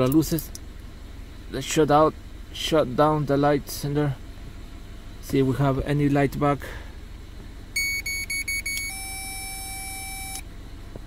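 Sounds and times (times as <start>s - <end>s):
electronic beeper beeping: 7.8s - 10.4s.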